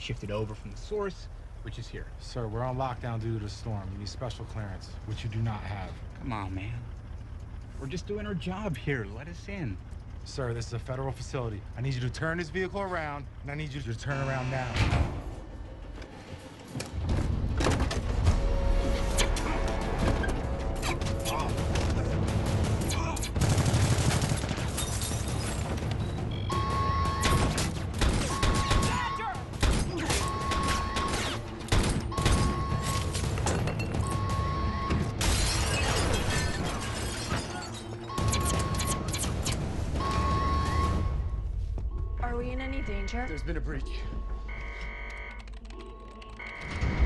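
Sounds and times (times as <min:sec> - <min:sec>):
dramatic music: 0:14.1 - 0:44.7
security alarm beeping: 0:26.0 - 0:27.5, 0:28.2 - 0:29.3, 0:30.1 - 0:31.0, 0:32.0 - 0:35.2, 0:37.8 - 0:39.2, 0:40.0 - 0:47.0.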